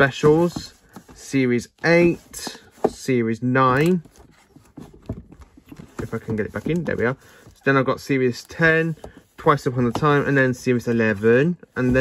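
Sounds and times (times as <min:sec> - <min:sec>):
plastic cases clicking and knocking: 0:03.7 - 0:07.6.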